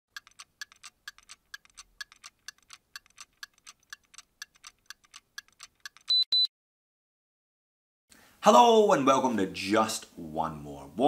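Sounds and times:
clock movement ticking: 0.1s - 6.1s.

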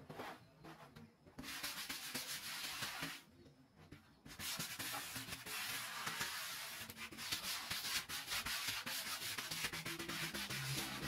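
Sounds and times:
sandpaper rubbing on plywood: 1.4s - 3.2s, 4.3s - 11.0s.

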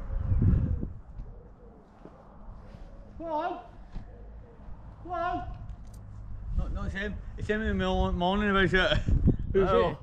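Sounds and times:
pigeon cooing: 0.0s - 2.8s.

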